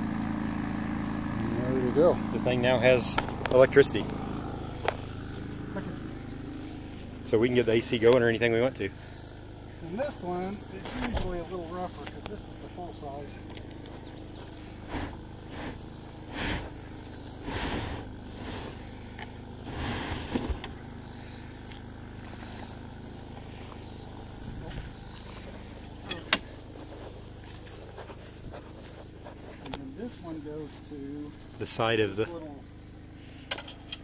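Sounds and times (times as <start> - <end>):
generator humming: 0.0 - 34.0.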